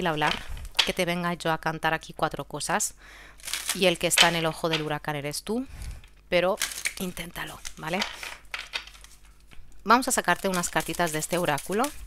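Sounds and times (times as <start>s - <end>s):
cards rustling: 3.4s - 4.9s, 6.6s - 9.6s, 10.3s - 12.0s
cards tapping: 6.6s - 9.2s.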